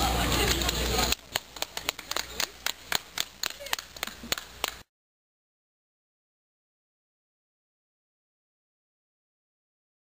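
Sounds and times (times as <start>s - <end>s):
hand clapping: 0.2s - 4.8s.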